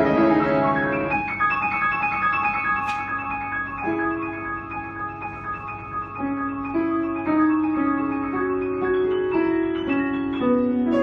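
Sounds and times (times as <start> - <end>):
two pianos playing classical piece: 0.0 - 11.0.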